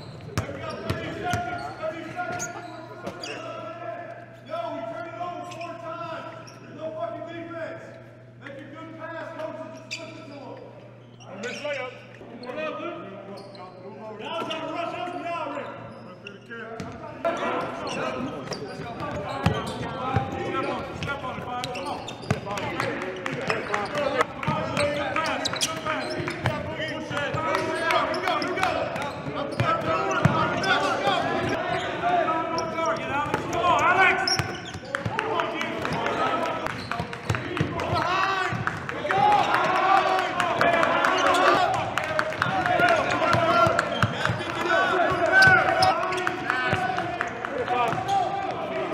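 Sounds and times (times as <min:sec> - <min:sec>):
many overlapping voices: 0:14.0 - 0:48.9
basketballs bouncing on hardwood: 0:35.8 - 0:39.8.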